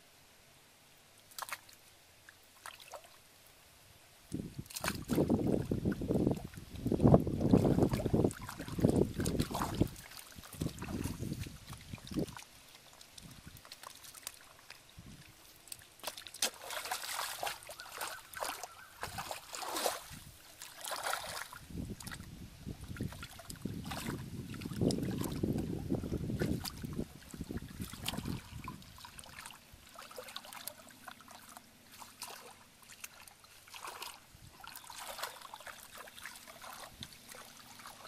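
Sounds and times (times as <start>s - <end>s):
hands splashing in muddy water: 1.3s - 1.8s, 4.6s - 14.8s, 15.6s - 22.3s, 22.9s - 38.0s.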